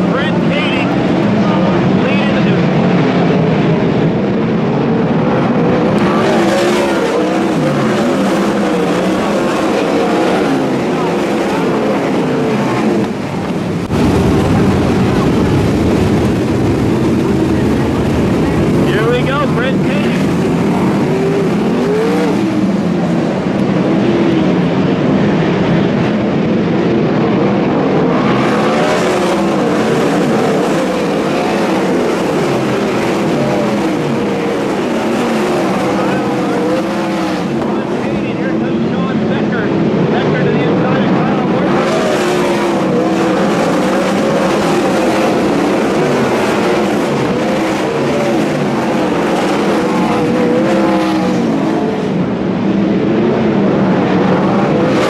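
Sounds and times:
racing car engines: 0.0s - 55.0s.

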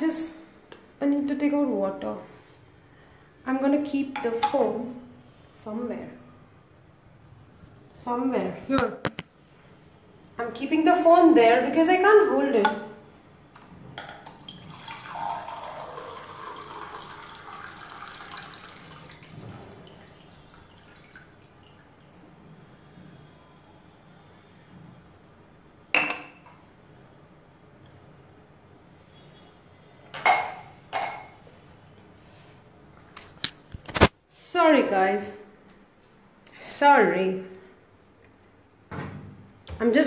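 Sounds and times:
water pouring into a container: 14.2s - 22.4s.

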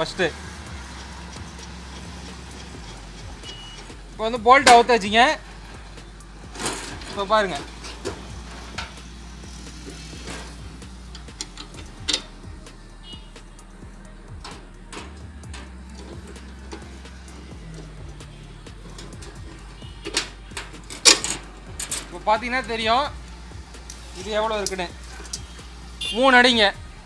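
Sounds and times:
metal bolt clicking and clinking: 9.9s - 12.4s, 14.4s - 18.2s, 18.8s - 22.2s.

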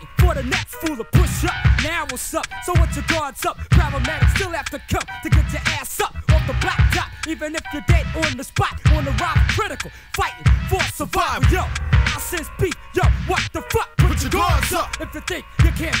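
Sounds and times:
rapping over a drum beat: 0.0s - 16.0s
heavy bass hits: 14.0s - 15.0s.

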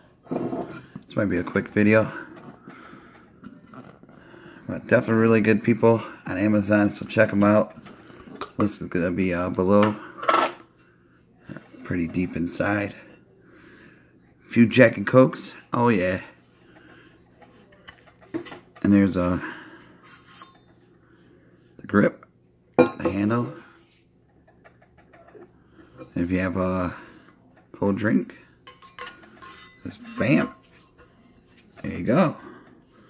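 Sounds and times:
metallic clink of steel tumbler: 28.7s - 30.6s.

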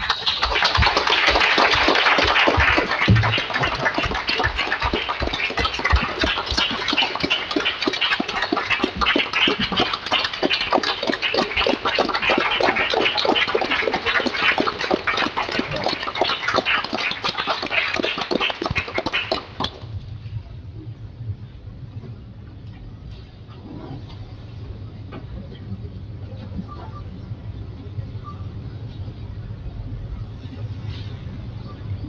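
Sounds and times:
audience applauding: 0.0s - 19.8s.

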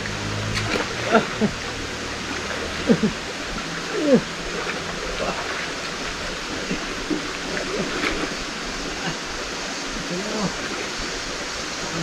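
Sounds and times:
river rushing: 0.0s - 12.0s.

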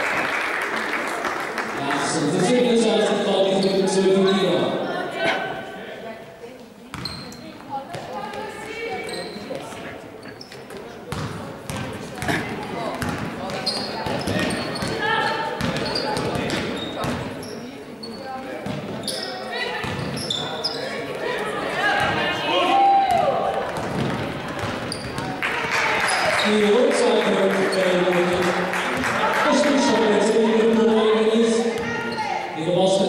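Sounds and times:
basketball bouncing on hall floor: 6.9s - 9.8s, 10.5s - 17.5s, 18.3s - 20.6s, 21.9s - 22.4s, 23.0s - 26.6s, 28.1s - 29.5s, 30.6s - 32.4s.

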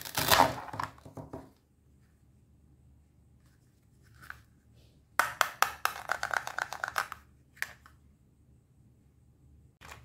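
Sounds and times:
plastic toy pieces clicking: 5.2s - 7.2s.

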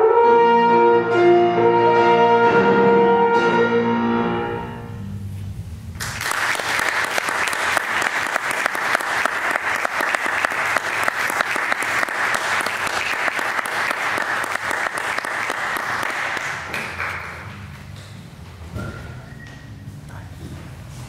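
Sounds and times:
horn and piano music: 0.0s - 5.4s
audience applauding: 6.0s - 17.7s.

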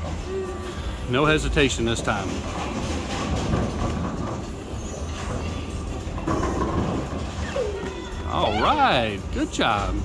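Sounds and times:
bowling alley noise: 0.0s - 10.0s
bowling ball rolling: 2.0s - 8.0s.

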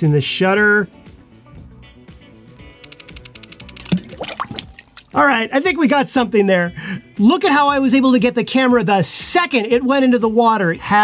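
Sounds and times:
camera shutter clicks: 2.8s - 4.1s
splash into water tank: 3.9s - 5.2s.

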